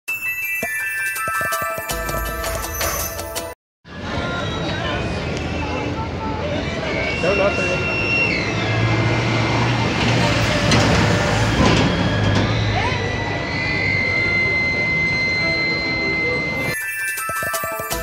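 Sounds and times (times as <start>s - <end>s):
street traffic: 2.0s - 16.8s.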